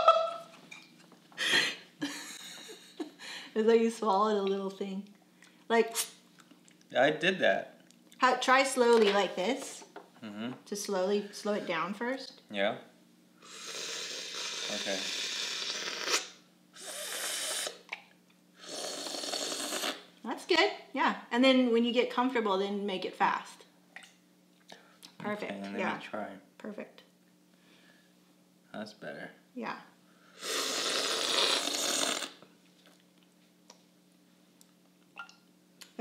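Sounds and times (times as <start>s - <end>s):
coffee slurped from a spoon: 18.6s - 20.0s.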